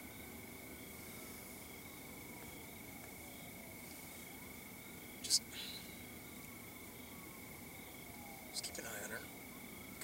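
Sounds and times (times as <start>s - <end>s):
crickets trilling: 0.0s - 10.0s
person whispering: 5.2s - 6.0s, 8.6s - 9.3s.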